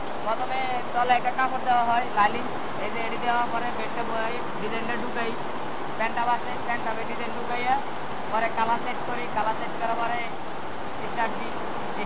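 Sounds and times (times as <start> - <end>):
men talking: 0.3 - 10.4.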